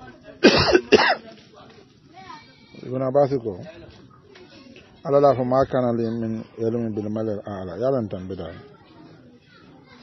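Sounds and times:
man coughing: 0:00.4 - 0:01.2.

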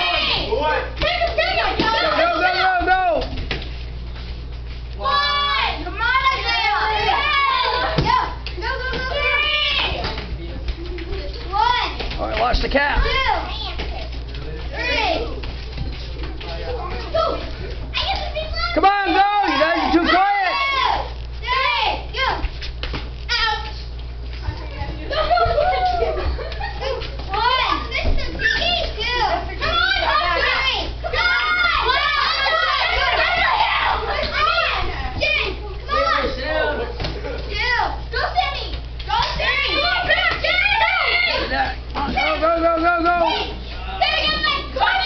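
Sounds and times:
steady low hum: 0:00.0 - 0:45.0
children shouting and cheering: 0:05.0 - 0:10.0, 0:19.4 - 0:22.4, 0:25.1 - 0:36.5, 0:37.6 - 0:45.0.

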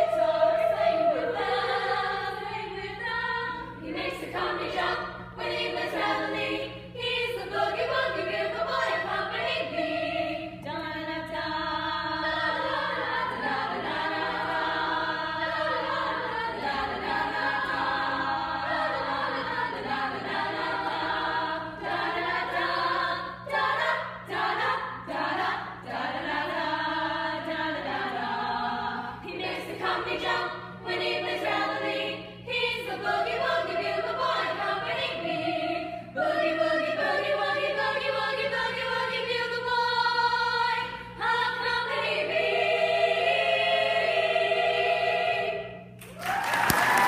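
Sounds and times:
women's choir singing in harmony: 0:00.0 - 0:47.0.

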